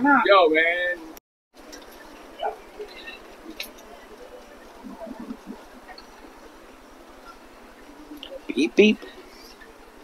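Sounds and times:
outdoor background noise: 0.0 - 10.0.

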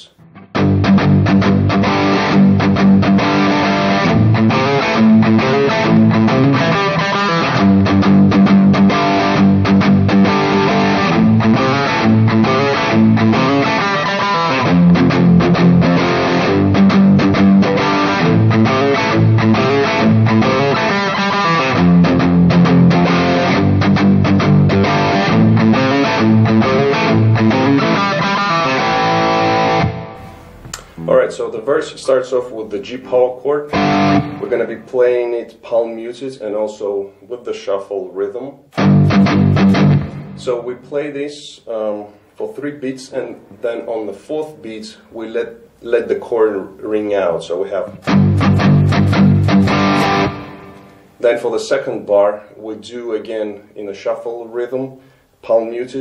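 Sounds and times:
electric guitar rock rhythm: 0.2 - 31.1, 33.7 - 34.9, 38.7 - 40.7, 47.8 - 51.2.

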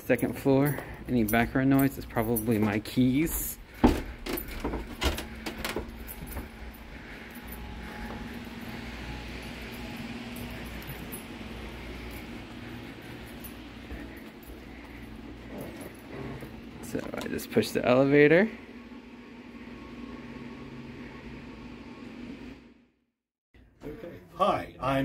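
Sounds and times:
keys jangling: 0.0 - 17.2
footsteps on creaky wooden bridge: 2.4 - 8.6.

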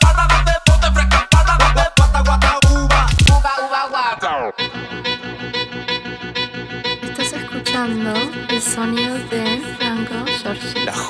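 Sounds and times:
dance music with held chord and beat: 0.0 - 11.0.

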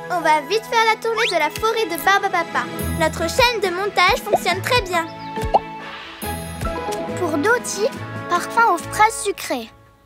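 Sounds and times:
cartoon background music: 0.0 - 9.8.

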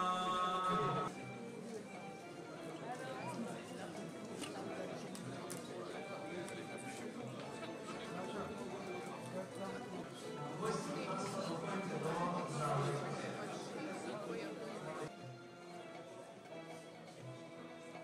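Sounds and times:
crowd conversation hum: 0.0 - 18.0
faint background music: 0.0 - 18.0.

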